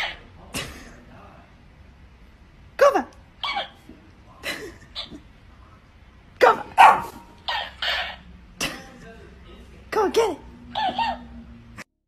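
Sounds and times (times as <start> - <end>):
dog barking and yipping: 6.6 - 8.2, 10.7 - 11.4.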